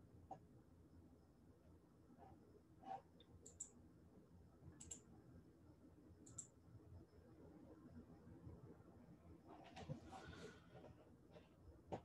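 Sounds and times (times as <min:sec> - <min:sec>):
computer mouse double-clicks: 0:03.4 - 0:03.8, 0:04.8 - 0:05.0, 0:06.2 - 0:06.5.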